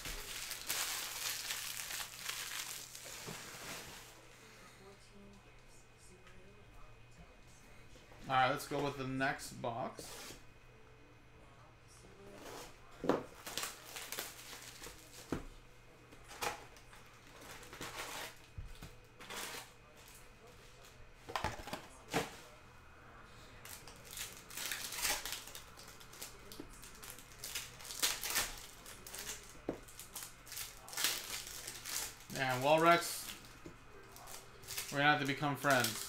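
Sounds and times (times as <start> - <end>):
foil wrappers crinkling: 0.0 - 4.2, 13.4 - 15.4, 16.3 - 18.5, 23.6 - 36.0.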